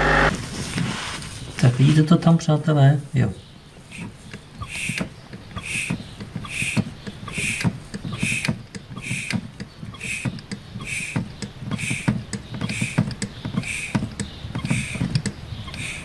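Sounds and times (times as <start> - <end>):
diesel engine running: 0.0 - 0.4.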